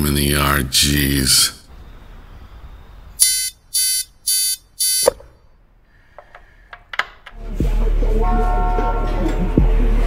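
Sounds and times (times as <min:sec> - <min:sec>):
electronic alarm beeping: 0:03.2 - 0:05.3.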